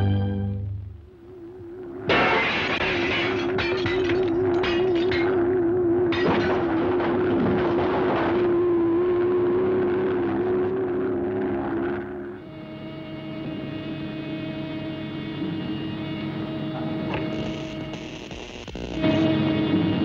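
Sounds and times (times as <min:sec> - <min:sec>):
electric hum: 0:00.0 - 0:20.0
wavering mechanical drone: 0:01.0 - 0:17.9.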